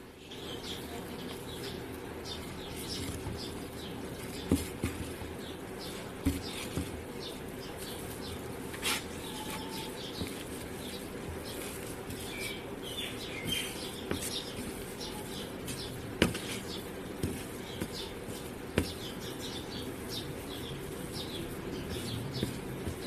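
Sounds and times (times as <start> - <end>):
hand mixing mashed potato: 0.8 - 23.0.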